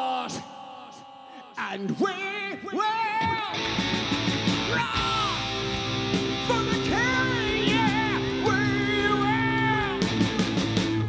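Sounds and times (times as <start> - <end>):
heavy metal band playing: 3.5 - 11.0
male singer holding a note: 6.4 - 10.5.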